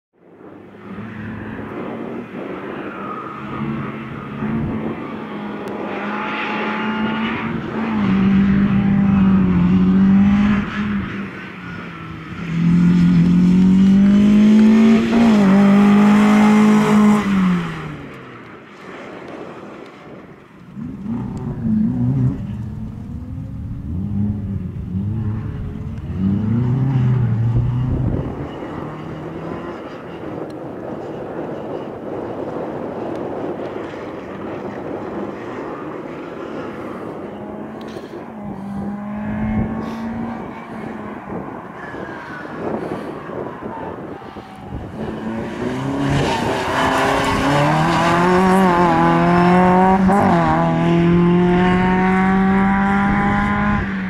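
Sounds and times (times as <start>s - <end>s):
car engine revving hard: 12.6s - 17.8s, 37.4s - 41.1s, 44.8s - 54.0s.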